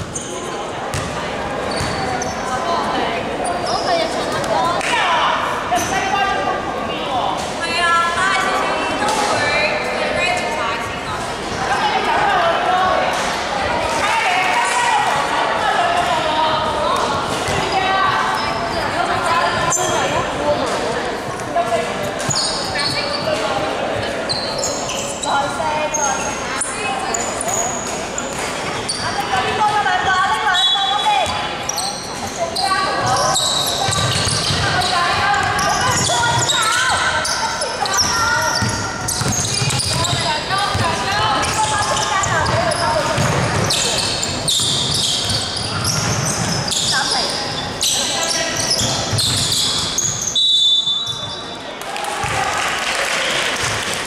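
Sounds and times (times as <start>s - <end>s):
high shoe squeaks: 0.0s - 0.6s, 1.6s - 2.7s, 22.2s - 29.3s, 30.4s - 51.6s
players calling out: 28.8s - 51.5s
basketball bouncing on hardwood: 38.6s - 41.0s.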